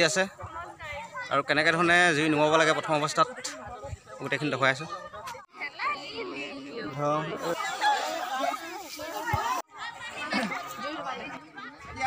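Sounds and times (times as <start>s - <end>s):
people talking: 2.6s - 12.0s.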